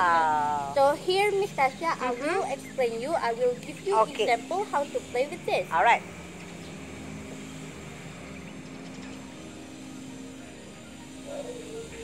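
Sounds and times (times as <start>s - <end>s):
distant engine drone: 0.0s - 12.0s.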